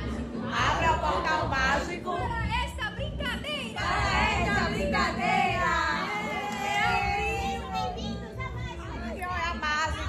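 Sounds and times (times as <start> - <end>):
faint music: 0.0 - 10.0
children talking and calling: 2.8 - 9.6.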